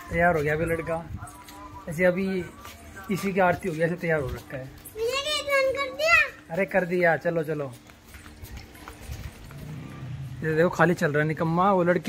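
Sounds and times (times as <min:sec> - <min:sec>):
footsteps on concrete: 0:00.0 - 0:10.4
faint music: 0:00.0 - 0:12.0.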